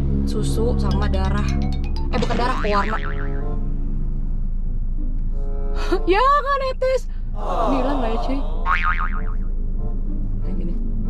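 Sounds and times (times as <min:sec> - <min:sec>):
light background music: 0:00.0 - 0:08.5, 0:09.4 - 0:11.0
cartoon boing sound effect: 0:01.0 - 0:03.5, 0:08.7 - 0:09.5.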